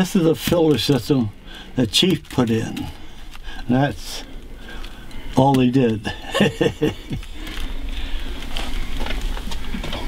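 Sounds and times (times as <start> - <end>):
low background hum: 0.0 - 10.0
man laughing: 6.0 - 7.6.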